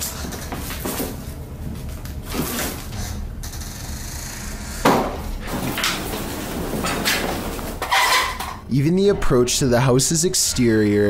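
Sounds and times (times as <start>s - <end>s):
scraping and rustling: 5.4s - 8.7s.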